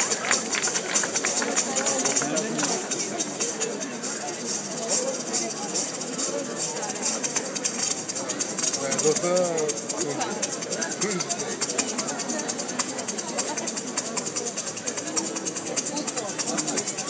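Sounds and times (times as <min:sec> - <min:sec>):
live band over loudspeakers: 0:00.0 - 0:03.3
shaker rhythm: 0:00.0 - 0:17.0
voices: 0:00.0 - 0:17.0.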